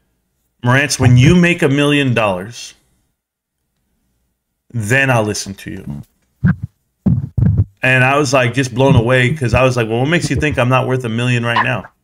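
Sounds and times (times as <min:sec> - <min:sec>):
man talking: 0:00.6 - 0:02.8, 0:04.7 - 0:06.1, 0:07.8 - 0:12.0.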